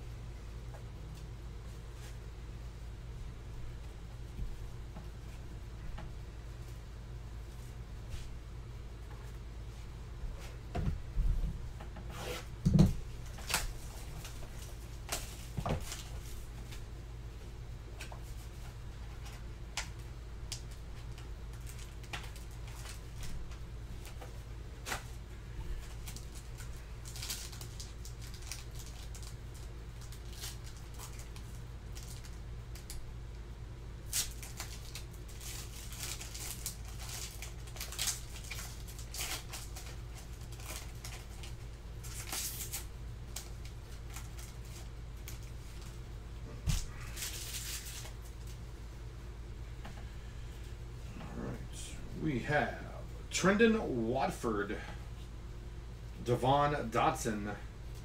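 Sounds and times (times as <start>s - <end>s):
steady low hum: 0.0s - 58.0s
clicks and rustles of wrappers: 13.2s - 16.8s, 18.0s - 33.1s, 34.0s - 46.0s, 46.7s - 48.6s
foil pack tearing open: 25.9s - 33.0s, 34.1s - 45.5s, 46.9s - 48.2s.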